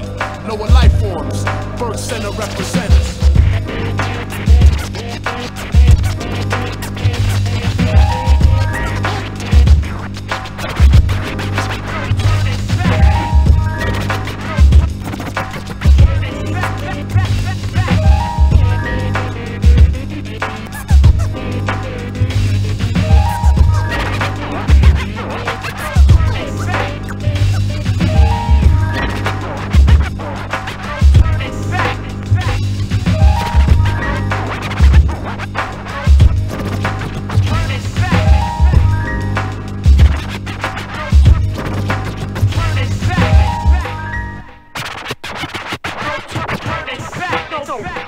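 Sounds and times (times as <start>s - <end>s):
hip hop beat: 0.0s - 48.0s
turntable scratches: 0.0s - 48.0s.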